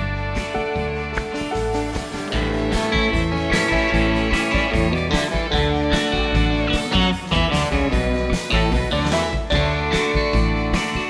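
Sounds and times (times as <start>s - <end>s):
electric guitar: 0.0s - 11.0s
live band playing instrumental: 0.0s - 11.0s.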